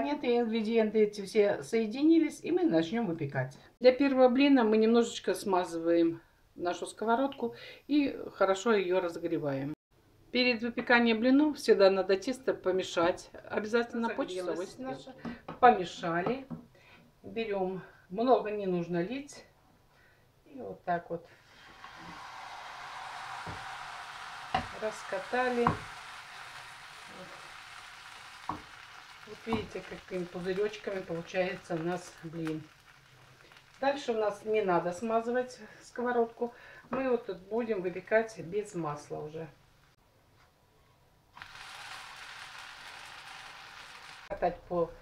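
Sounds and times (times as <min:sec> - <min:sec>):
batter sizzling in frying pan: 0:21.4 - 0:36.6, 0:41.4 - 0:44.4.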